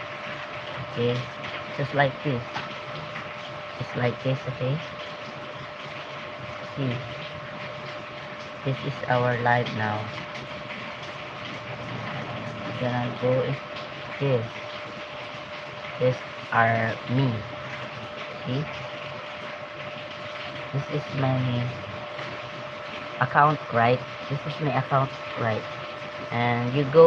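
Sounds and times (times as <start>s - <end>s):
background hum and hiss: 0.0s - 27.0s
person speaking: 0.8s - 2.6s, 3.8s - 4.9s, 6.8s - 7.2s, 8.6s - 10.2s, 12.1s - 14.5s, 16.0s - 17.6s, 18.4s - 18.7s, 20.8s - 21.9s, 23.2s - 25.7s, 26.3s - 27.0s.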